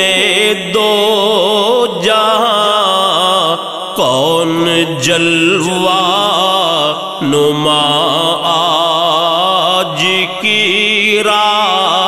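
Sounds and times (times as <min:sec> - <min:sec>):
voices singing devotional chant: 0:00.0 - 0:12.0.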